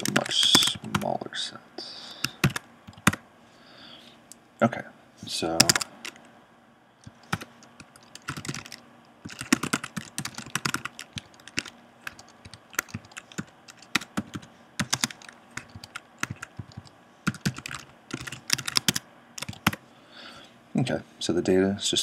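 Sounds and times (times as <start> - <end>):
typing on computer keyboard: 0.0 - 1.1, 2.2 - 3.2, 5.6 - 6.2, 7.0 - 19.8.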